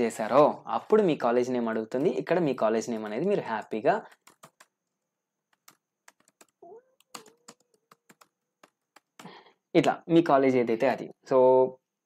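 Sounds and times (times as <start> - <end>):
keyboard typing clicks: 4.1 - 4.8, 5.5 - 9.3.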